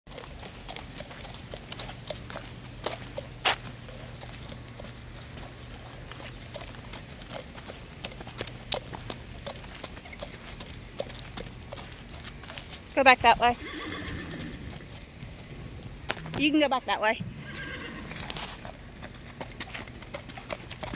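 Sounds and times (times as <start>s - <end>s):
horse hooves clopping on wet pavement: 0.1s - 20.9s.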